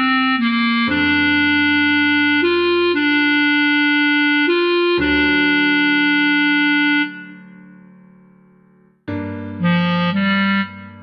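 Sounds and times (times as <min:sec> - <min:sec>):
clarinet long note: 0:00.0 - 0:07.8, 0:09.5 - 0:11.0
backing track: 0:00.0 - 0:08.0.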